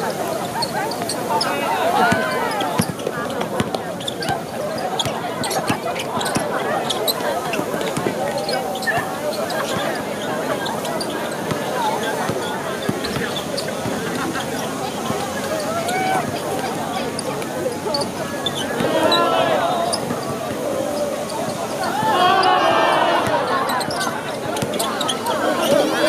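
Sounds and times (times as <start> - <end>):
voices chattering and calling: 0.0 - 26.0
basketball bouncing on court: 2.0 - 19.2, 23.2 - 26.0.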